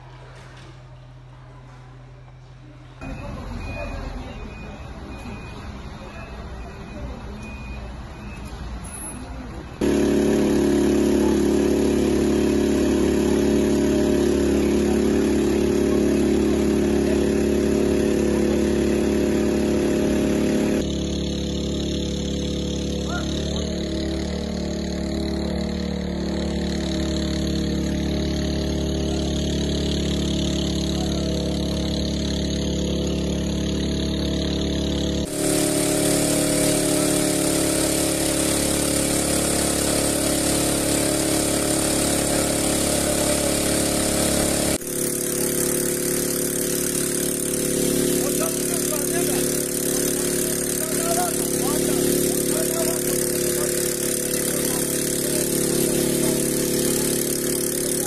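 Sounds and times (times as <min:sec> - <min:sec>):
small petrol engine running: 0:08.8 - 0:58.0.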